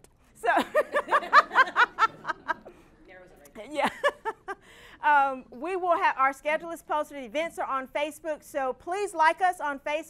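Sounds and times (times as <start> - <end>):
woman laughing: 0.4 - 2.7, 3.7 - 4.8.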